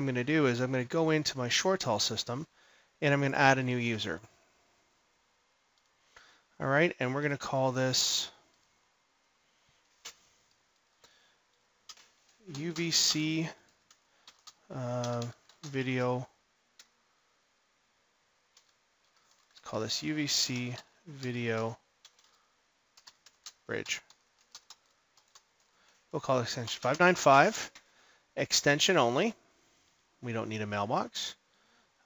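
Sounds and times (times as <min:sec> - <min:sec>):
computer keyboard keystrokes: 0:11.9 - 0:13.1, 0:13.7 - 0:15.8, 0:18.5 - 0:19.6, 0:22.0 - 0:22.4, 0:23.0 - 0:26.0.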